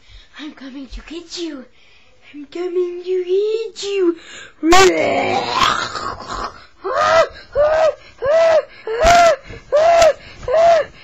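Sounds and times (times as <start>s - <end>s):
high-pitched voice yelling: 4.7s - 5.8s.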